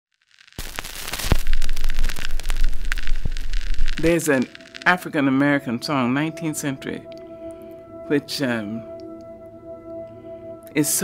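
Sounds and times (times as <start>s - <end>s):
crackling with sharp pops: 0.1s - 4.9s
low rumble: 0.6s - 4.9s.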